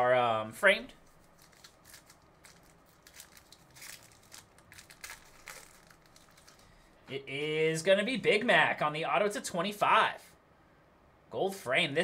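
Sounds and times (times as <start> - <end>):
wrapper crinkling and rustling: 1.0 - 6.9.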